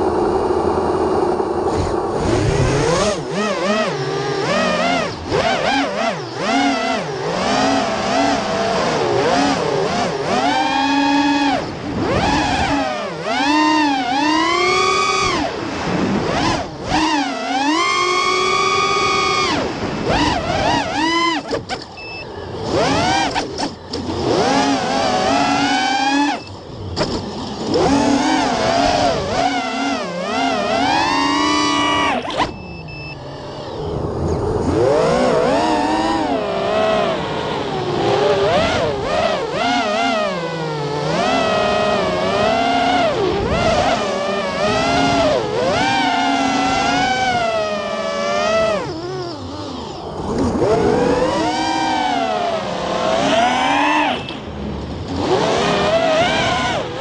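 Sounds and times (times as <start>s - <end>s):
quadcopter motors whining: 0.0s - 57.0s.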